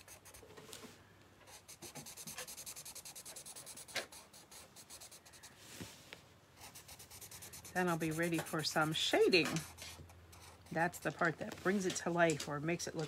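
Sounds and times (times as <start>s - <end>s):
marker scratching on paper: 0.0s - 0.4s, 1.5s - 5.4s, 6.6s - 11.1s.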